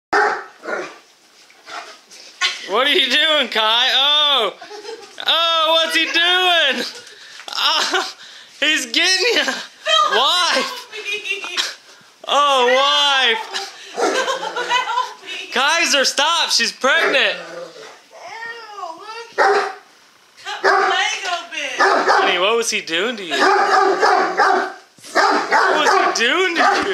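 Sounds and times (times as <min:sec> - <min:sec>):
dog barking: 0:00.1 - 0:01.0, 0:14.0 - 0:14.4, 0:19.4 - 0:19.8, 0:20.6 - 0:21.0, 0:21.8 - 0:22.4, 0:23.4 - 0:26.9.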